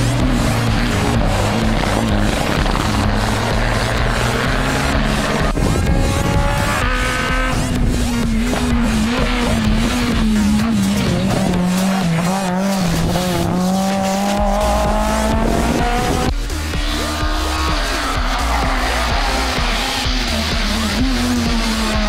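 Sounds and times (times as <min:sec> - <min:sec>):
rally car engine decelerating and accelerating: 0:00.0 - 0:22.0.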